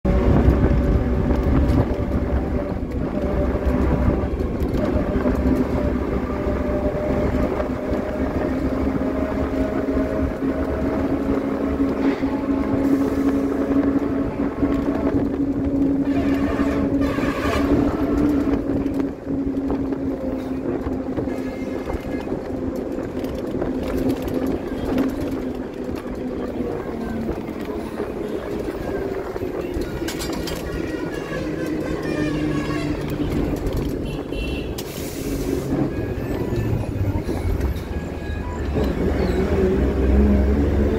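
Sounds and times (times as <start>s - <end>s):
road rumble: 0.0s - 40.9s
vehicle engine humming: 0.0s - 40.9s.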